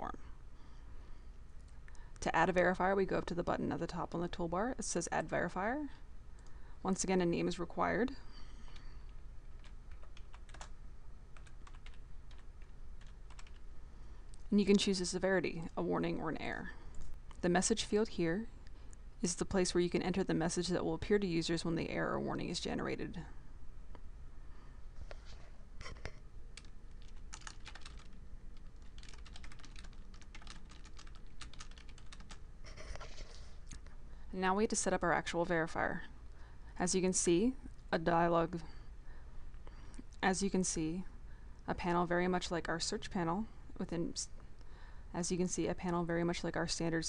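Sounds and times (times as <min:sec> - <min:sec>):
computer keyboard typing: 0:09.6 - 0:10.8, 0:11.4 - 0:13.6, 0:26.6 - 0:32.4.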